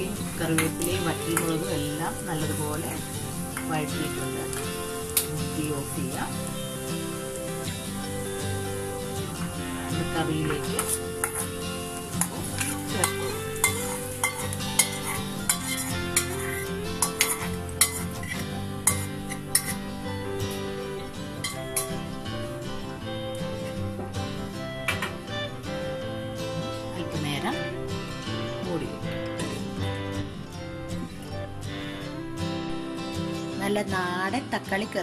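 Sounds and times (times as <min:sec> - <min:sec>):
instrumental background music: 0:00.0 - 0:35.0
metal spoon scraping steel pan: 0:10.7 - 0:19.9.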